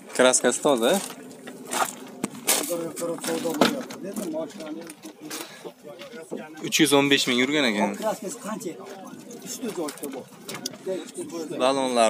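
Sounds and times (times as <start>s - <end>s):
people talking in background: 0.2s - 12.0s.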